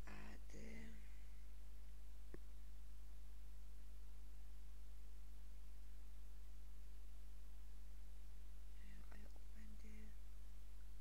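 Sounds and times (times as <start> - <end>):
person whispering: 0.0 - 1.2, 8.8 - 10.2
low electrical hum: 0.0 - 11.0.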